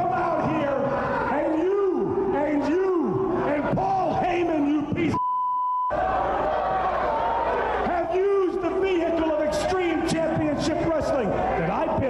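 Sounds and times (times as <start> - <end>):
man yelling into a microphone: 0.0 - 5.2, 7.8 - 12.0
crowd: 0.0 - 12.0
high-pitched censor bleep: 5.2 - 5.9.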